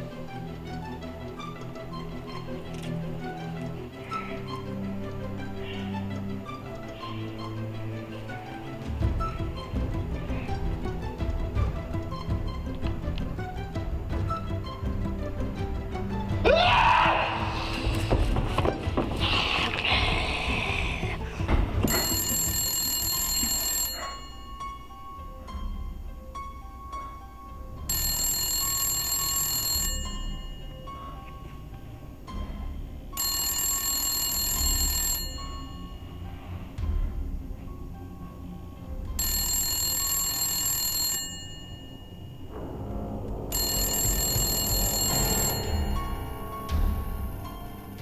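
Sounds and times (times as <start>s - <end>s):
low background music: 0.0s - 48.0s
telephone bell ringing: 21.9s - 25.3s, 27.9s - 31.5s, 33.2s - 36.3s, 39.2s - 42.6s, 43.5s - 47.7s.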